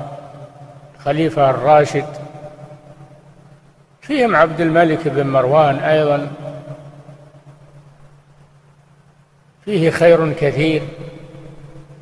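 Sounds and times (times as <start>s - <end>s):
faint low hum: 0.0s - 12.0s
person speaking: 1.0s - 2.6s, 4.0s - 7.1s, 9.6s - 11.6s.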